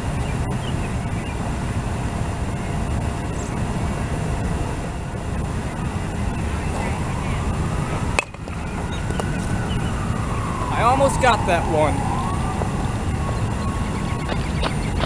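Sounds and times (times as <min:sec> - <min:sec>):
faint rising whine: 0:00.0 - 0:15.0
low outdoor rumble: 0:00.0 - 0:15.0.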